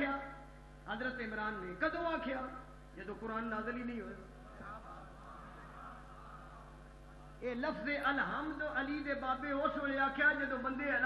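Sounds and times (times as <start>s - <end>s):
faint room noise: 0.0s - 11.0s
sound system electrical hum: 0.0s - 11.0s.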